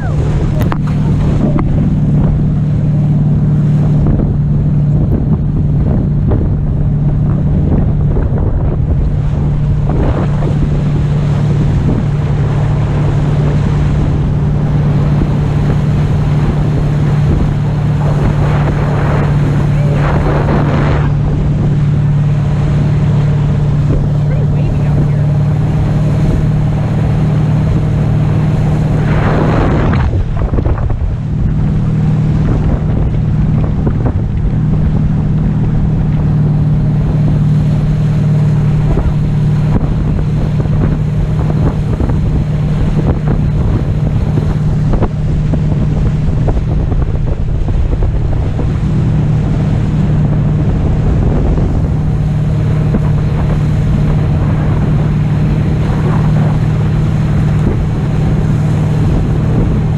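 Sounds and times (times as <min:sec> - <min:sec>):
rushing water: 0:00.0 - 0:59.9
speedboat engine droning: 0:00.0 - 0:59.9
wind buffeting microphone: 0:00.0 - 0:59.9.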